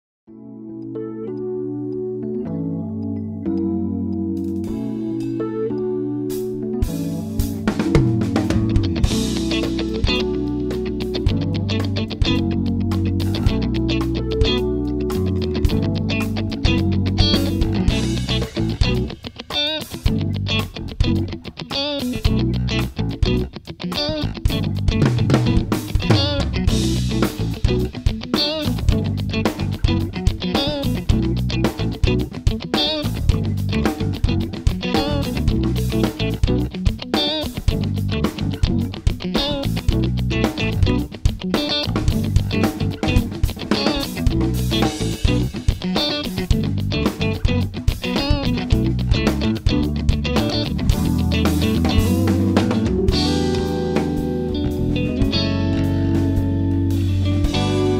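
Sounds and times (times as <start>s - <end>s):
bass guitar: 0.9s - 57.9s
distorted electric guitar: 2.3s - 57.9s
drum kit rapid hits: 6.8s - 23.4s, 24.0s - 57.9s.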